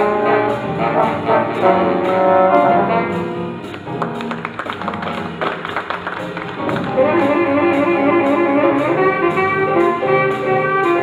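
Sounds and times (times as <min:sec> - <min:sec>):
held low notes: 0:06.4 - 0:11.0.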